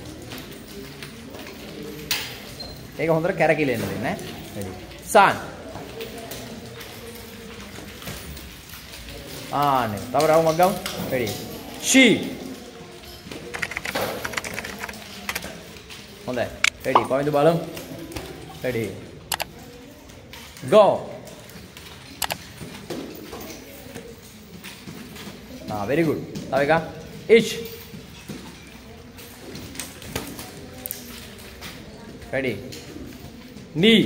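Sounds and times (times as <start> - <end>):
keyboard keys clicking: 13.5 - 15.5, 16.6 - 17.2
wooden nunchaku taps and knocks: 16.5 - 17.3.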